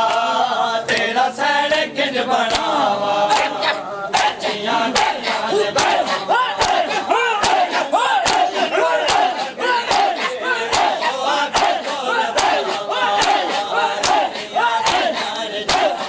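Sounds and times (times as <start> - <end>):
hands slapping chests in unison: 0.0 - 16.0
men calling out: 5.3 - 14.9.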